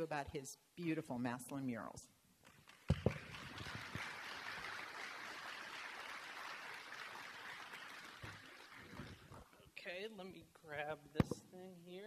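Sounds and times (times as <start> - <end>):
audience applauding: 2.6 - 9.5.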